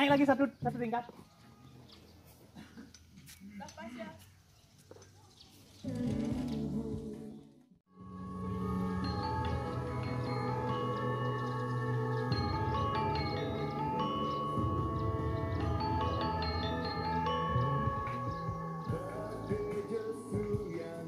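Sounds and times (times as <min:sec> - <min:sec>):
chiming mallet notes: 0:08.0 - 0:21.0
low bass: 0:08.0 - 0:21.0.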